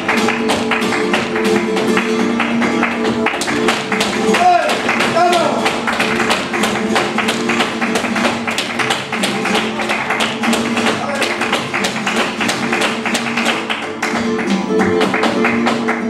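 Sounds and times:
dancer's footwork strikes: 0.0s - 16.0s
flamenco guitars playing: 0.0s - 16.0s
hand clapping: 0.0s - 16.0s.

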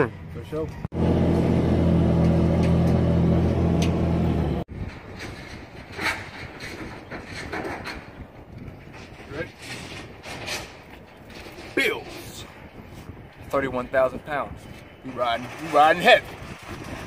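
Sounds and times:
vehicle engine running: 0.9s - 4.7s.

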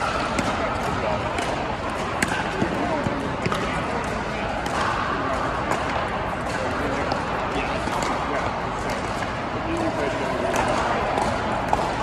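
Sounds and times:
ball bouncing on court: 0.0s - 12.0s
murmur of voices: 0.0s - 12.0s.

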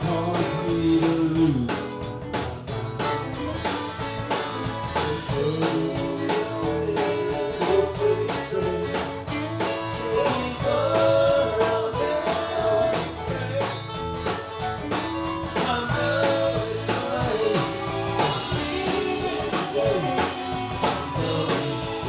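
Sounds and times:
drum kit beat: 0.0s - 22.0s
electric guitar melody: 0.0s - 22.0s.

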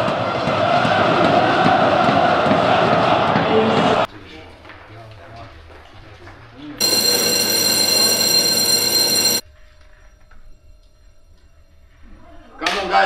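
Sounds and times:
electric bell ringing: 6.8s - 9.4s.

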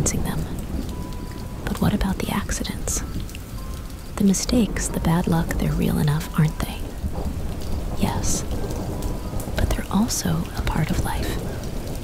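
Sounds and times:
low rumble of thunder: 0.0s - 12.0s
steady rain: 0.0s - 12.0s.

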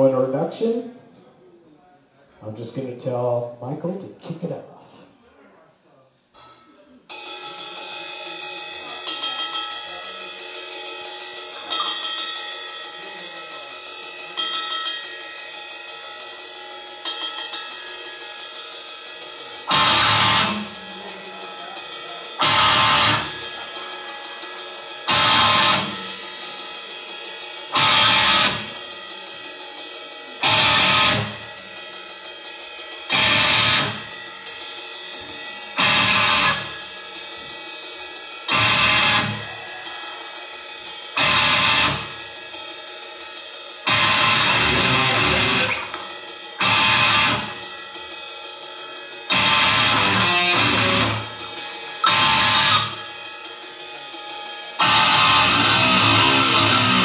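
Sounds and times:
cymbal ticking: 7.1s - 57.0s
full band hits: 7.1s - 57.0s
sustained electric guitar: 19.7s - 21.4s, 22.3s - 23.8s, 25.1s - 26.4s, 27.7s - 28.8s, 30.4s - 31.5s, 33.1s - 34.2s, 35.7s - 36.8s, 38.5s - 39.6s, 41.2s - 42.2s, 43.9s - 47.6s, 49.3s - 51.4s, 52.0s - 53.0s, 54.8s - 57.0s.

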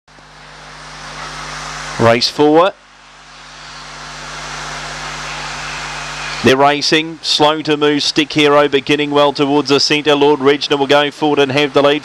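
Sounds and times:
low steady hum: 0.1s - 12.0s.

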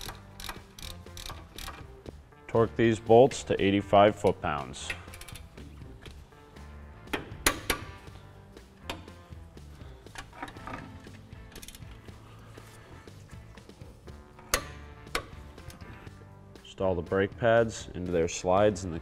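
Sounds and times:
torque wrench clicks: 0.0s - 1.8s, 4.9s - 5.5s
torque wrench ratcheting: 0.0s - 1.9s.

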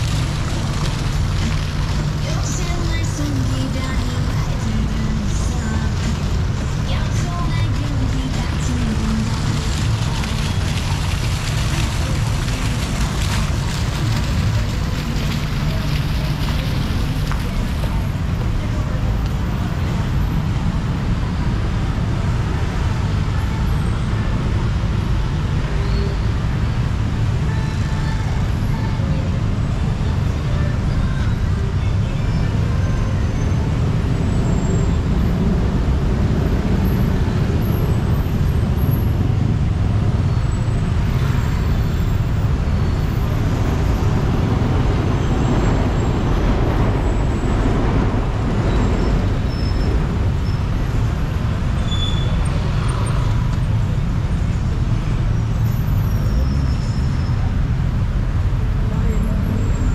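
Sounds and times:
cars and motorbikes passing: 0.0s - 59.9s
low traffic rumble: 0.0s - 59.9s.

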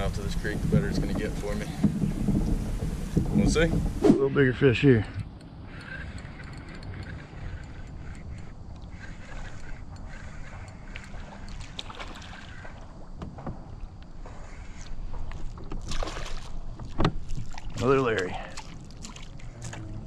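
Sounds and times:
water and hull rumble: 0.0s - 20.0s.

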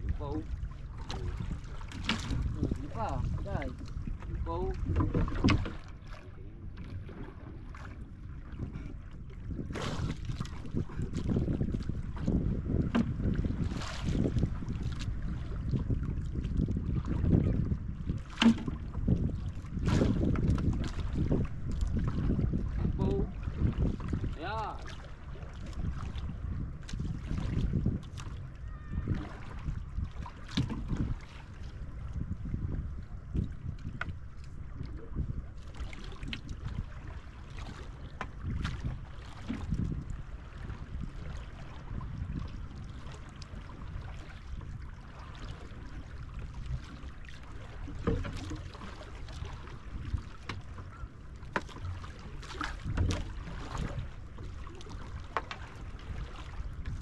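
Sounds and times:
water lapping against canoe: 0.0s - 57.0s
wind rumbling on microphone: 0.0s - 57.0s
knocks on canoe: 4.8s - 5.9s, 12.7s - 13.4s, 18.3s - 18.9s.

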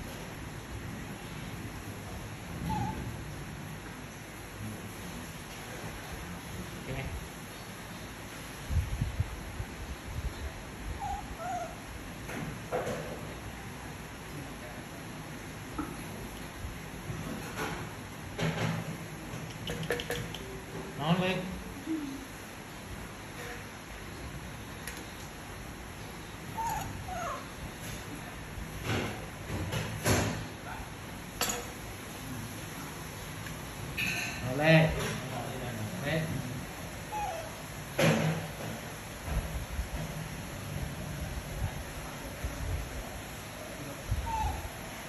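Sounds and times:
baby monkey cooing: 2.6s - 3.1s, 11.0s - 11.8s, 26.6s - 27.5s, 37.1s - 37.6s, 44.1s - 44.8s
baby monkey squeaking: 2.7s - 3.0s, 26.6s - 27.4s, 44.2s - 44.6s
sharp clicks and knocks: 18.4s - 20.5s.

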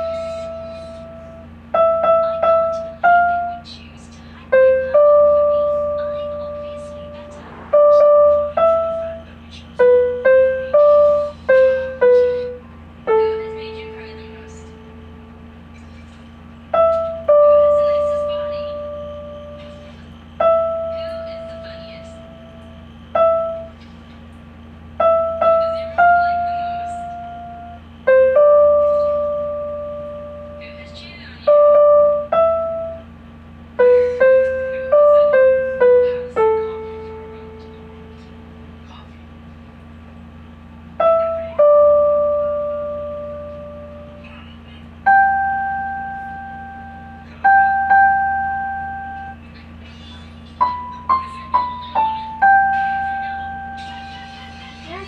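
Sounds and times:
electronic keyboard piano note: 0.0s - 3.8s, 4.5s - 15.7s, 16.6s - 23.8s, 24.8s - 39.0s, 40.8s - 55.0s.

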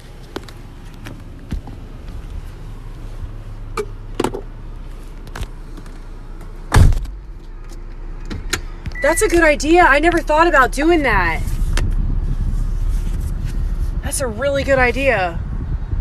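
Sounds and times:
car door shutting: 3.7s - 4.5s, 5.2s - 9.4s.

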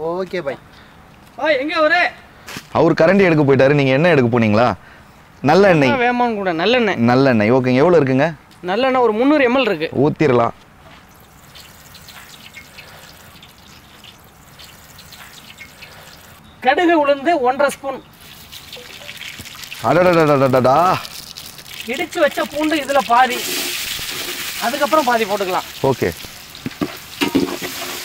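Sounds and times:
men talking: 1.4s - 4.8s, 5.4s - 10.6s, 16.6s - 18.2s, 19.8s - 21.2s, 21.8s - 23.7s, 24.5s - 26.3s
hot oil sizzling: 11.1s - 16.4s, 18.1s - 28.0s
oil trickling into pot: 11.1s - 16.4s, 18.2s - 28.0s.

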